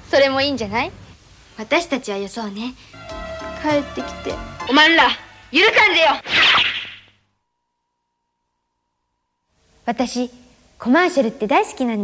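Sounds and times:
whip-like swish of yo-yo: 6.2 - 7.0.

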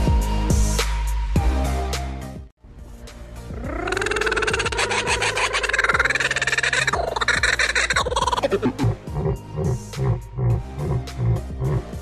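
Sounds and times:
kookaburra laughing call: 3.5 - 11.8.

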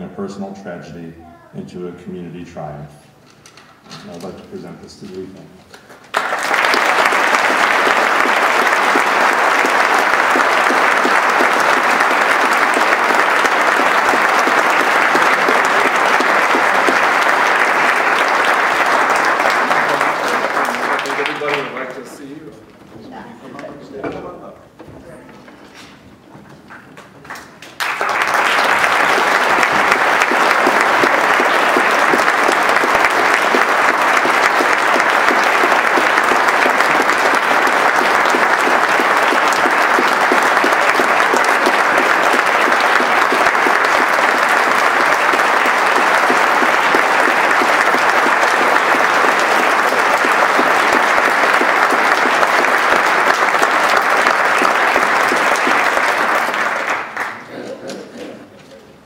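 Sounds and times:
audience applauding: 5.9 - 22.4, 26.6 - 58.6.

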